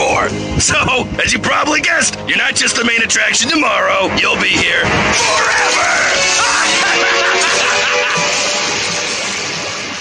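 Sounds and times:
cartoon soundtrack music: 0.0s - 10.0s
loud rushing pouring effect: 4.4s - 10.0s.

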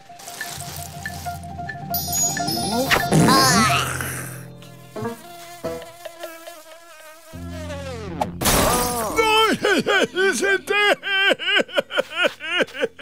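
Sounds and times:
cartoon fly buzzing: 2.0s - 8.4s.

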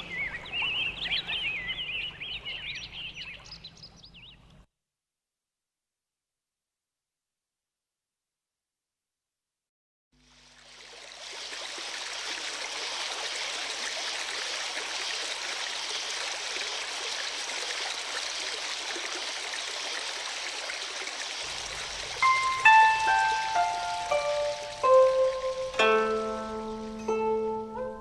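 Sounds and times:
stream water running: 0.0s - 4.4s, 10.2s - 28.0s
plucked zither notes: 21.7s - 28.0s.

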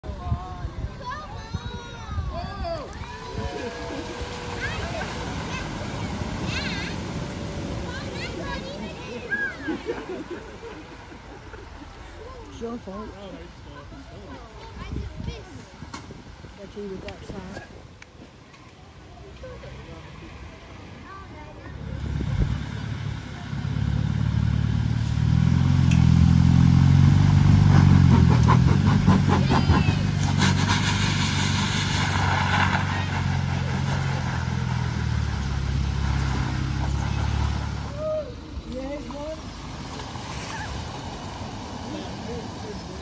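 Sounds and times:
cars driving past on wet road: 2.5s - 17.8s, 18.8s - 43.0s.

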